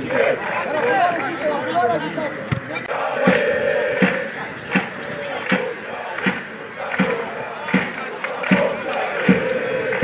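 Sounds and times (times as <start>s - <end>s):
fans shouting and chanting: 0.0s - 10.0s
bass drum thumps: 2.5s - 5.6s.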